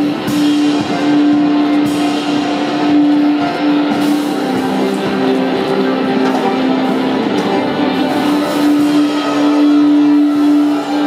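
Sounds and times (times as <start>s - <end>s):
live band droning note: 0.0s - 11.0s.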